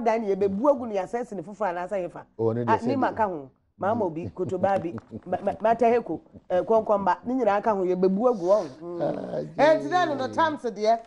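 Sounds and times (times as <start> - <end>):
voices talking: 2.4 - 7.4
rough gravelly vocal sound: 8.2 - 10.5.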